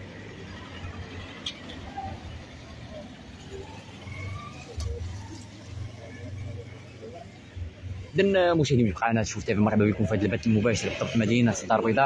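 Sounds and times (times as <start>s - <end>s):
passing vehicles rumbling: 0.0s - 12.0s.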